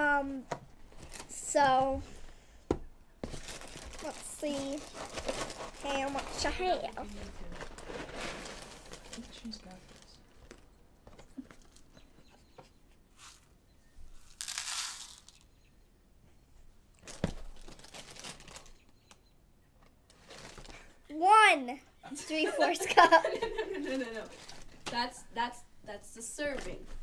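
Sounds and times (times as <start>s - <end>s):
plastic bag crinkling: 3.2s - 10.7s, 14.2s - 15.4s, 17.0s - 18.8s, 20.1s - 20.9s, 24.3s - 24.8s
cereal poured into plastic bowl: 14.2s - 15.4s.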